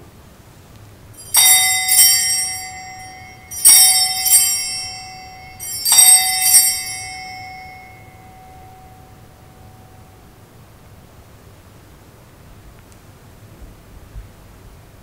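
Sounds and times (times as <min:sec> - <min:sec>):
altar bells ringing: 0:01.2 - 0:10.2.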